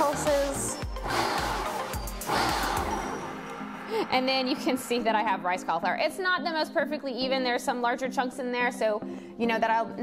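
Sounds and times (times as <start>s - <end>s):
background music: 0.0s - 10.0s
food processor chopping: 0.9s - 3.2s.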